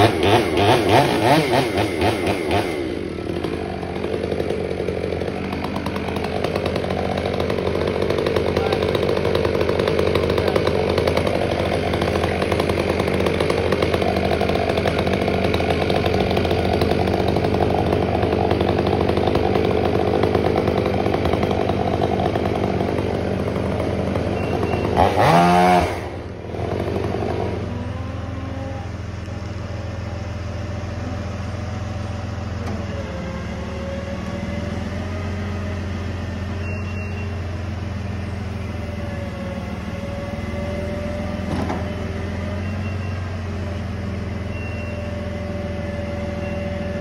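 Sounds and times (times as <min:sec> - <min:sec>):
chainsaw cutting through tree trunk: 0:00.0 - 0:28.9, 0:32.7 - 0:47.0.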